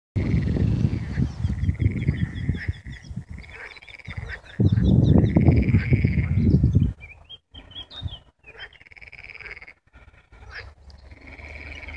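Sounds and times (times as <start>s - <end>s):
frogs croaking: 0.2s - 6.7s, 7.5s - 11.9s
wind on microphone: 0.2s - 8.3s.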